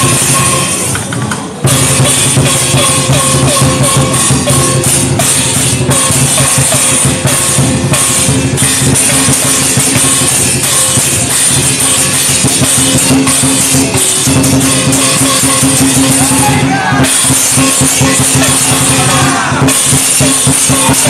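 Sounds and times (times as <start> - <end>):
big drum beating: 0.0 - 21.0
cymbal crashes: 0.0 - 21.0.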